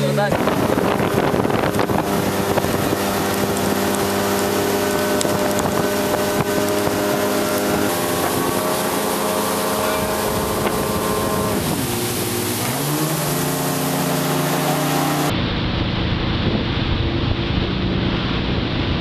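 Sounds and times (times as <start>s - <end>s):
wind buffeting microphone: 0.0s - 13.9s, 15.2s - 19.0s
motorboat engine running: 0.0s - 19.0s
rushing water: 0.0s - 19.0s.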